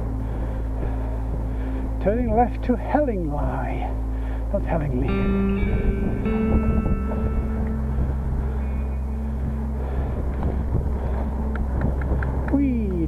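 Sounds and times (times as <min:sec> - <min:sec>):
held musical notes: 0:00.0 - 0:13.0
wind rumbling on microphone: 0:00.0 - 0:13.0
light ticks: 0:11.4 - 0:13.0.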